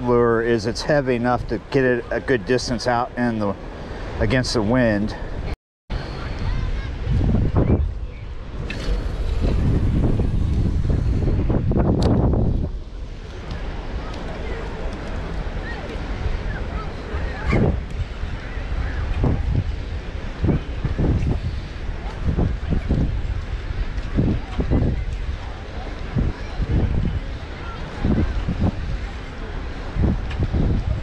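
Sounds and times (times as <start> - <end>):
faint voices: 0.0 - 10.1, 13.0 - 20.8, 21.4 - 31.0
sea waves washing: 0.0 - 31.0
wind on microphone: 0.0 - 31.0.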